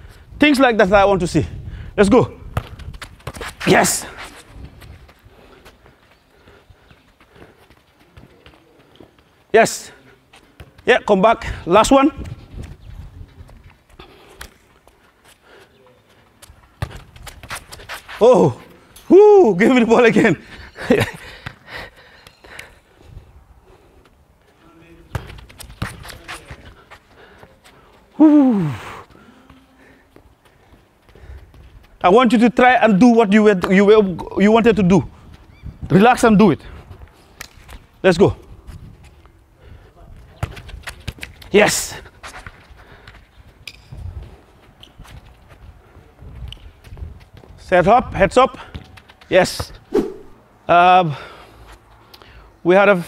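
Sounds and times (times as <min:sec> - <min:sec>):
football scuffing on artificial turf: 0:02.3 - 0:18.8, 0:24.0 - 0:28.2, 0:29.0 - 0:32.0, 0:40.1 - 0:50.4
football dribbling thuds: 0:02.4 - 0:05.2, 0:16.8 - 0:18.0, 0:25.0 - 0:26.7, 0:40.2 - 0:41.6
short breaths: 0:14.0 - 0:15.9, 0:21.2 - 0:24.2, 0:27.1 - 0:31.5, 0:51.1 - 0:52.6.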